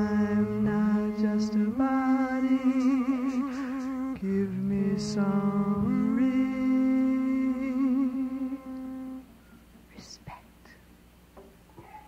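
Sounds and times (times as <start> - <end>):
person singing a long note: 0.0 - 9.3.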